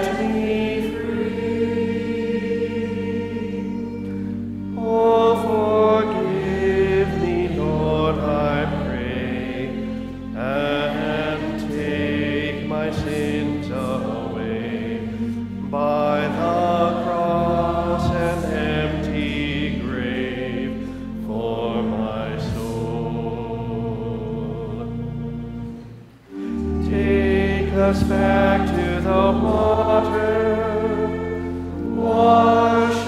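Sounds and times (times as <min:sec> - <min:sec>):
held instrumental chords: 0:00.0 - 0:33.0
person singing worship song: 0:00.0 - 0:33.0.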